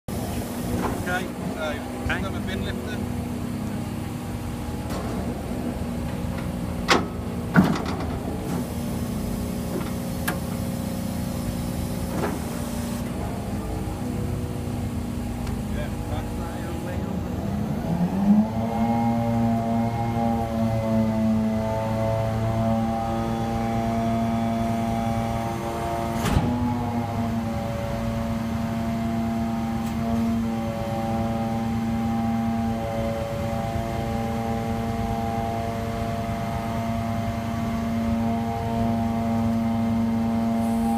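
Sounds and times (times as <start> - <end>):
garbage truck engine and hydraulics: 0.1 - 40.9.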